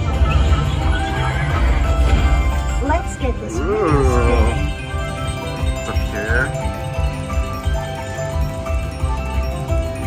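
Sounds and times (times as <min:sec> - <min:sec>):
slot machine game music: 0:00.0 - 0:10.0.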